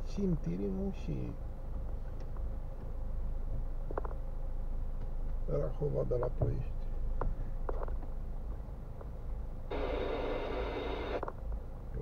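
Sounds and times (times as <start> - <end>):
harsh hiss-like noise: 9.7 - 11.2.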